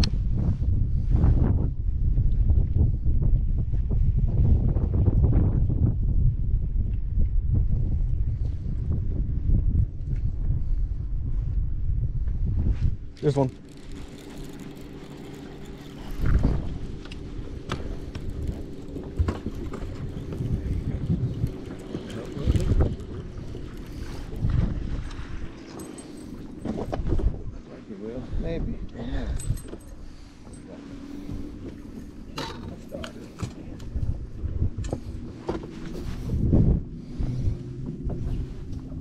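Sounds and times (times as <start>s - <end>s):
steady low hum: 0.0s - 39.0s
wind buffeting microphone: 0.0s - 39.0s
fishing rod and reel clicks: 13.1s - 27.2s.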